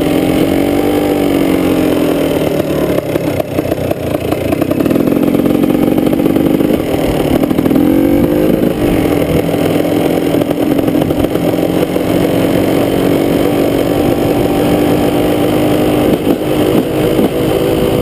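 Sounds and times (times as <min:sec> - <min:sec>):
dirt bike engine cruising: 0:00.0 - 0:18.0.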